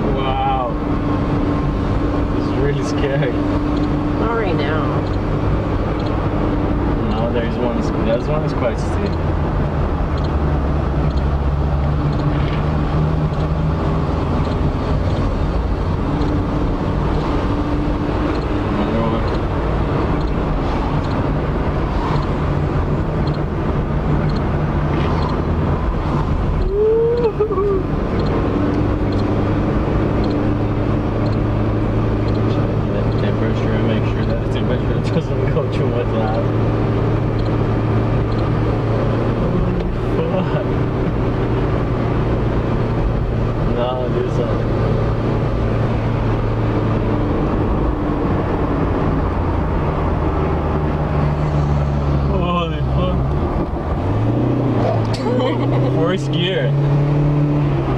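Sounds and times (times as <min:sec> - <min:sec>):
car engine and road noise: 0:00.0 - 0:57.9.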